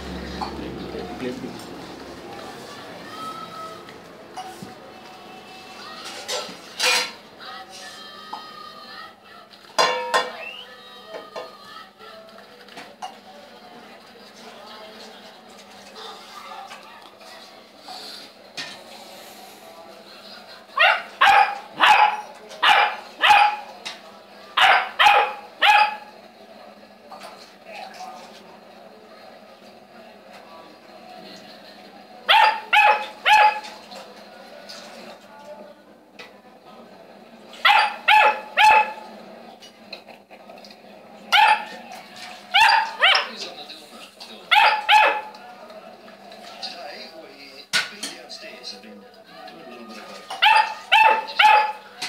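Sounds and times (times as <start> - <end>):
puppy barking: 20.8 - 23.8, 24.6 - 26.1, 32.3 - 33.8, 37.6 - 39.1, 41.3 - 41.8, 42.5 - 43.4, 44.5 - 45.4, 50.3 - 51.9.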